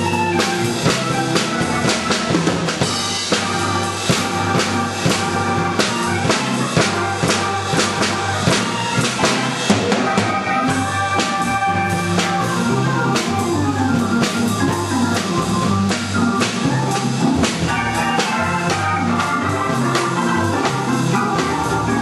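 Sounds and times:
organ playing chords and bass: 0.0 - 22.0
steady drum beat: 0.0 - 22.0.

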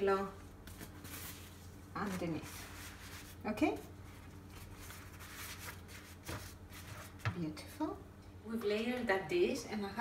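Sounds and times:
pastry sheets and paper rustling: 0.4 - 7.5.

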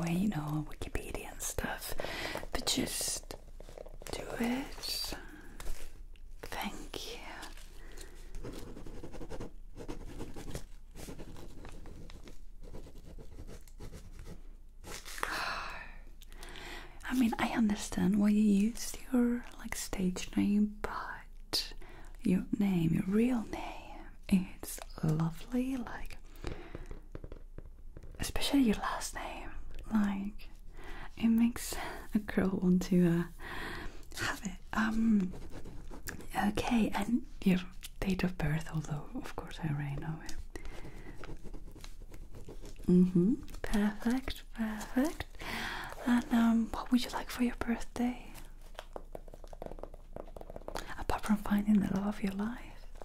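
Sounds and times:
woman speaking and whispering softly: 0.0 - 5.8, 6.4 - 8.0, 17.0 - 26.3, 28.2 - 40.5, 42.8 - 48.7, 50.8 - 53.0.

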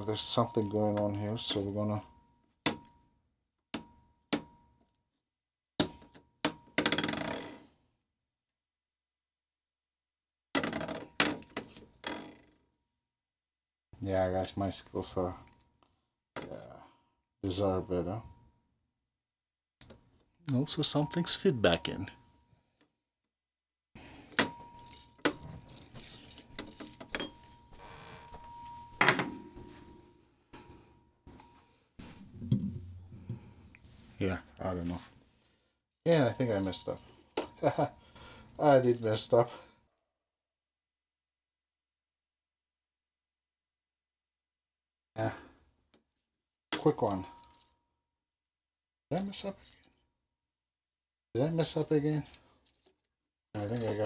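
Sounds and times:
faint feedback ringing tone: 0.0 - 2.5, 20.5 - 22.8, 24.5 - 32.4.

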